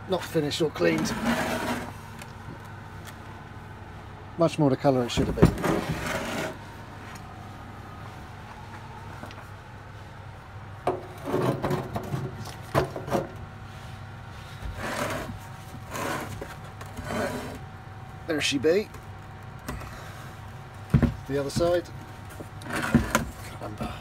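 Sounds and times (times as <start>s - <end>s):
steady low hum: 0.0s - 24.0s
stone rubbing and scraping on wood: 1.0s - 2.0s, 5.6s - 6.6s, 14.8s - 17.6s.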